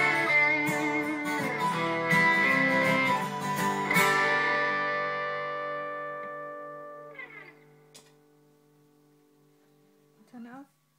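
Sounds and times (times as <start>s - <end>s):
guitars strumming chords: 0.0s - 8.5s
small click: 7.9s - 8.2s.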